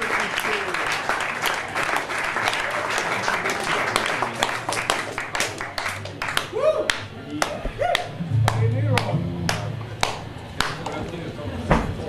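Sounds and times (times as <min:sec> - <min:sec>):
low sustained bass tone: 0:08.2 - 0:10.8.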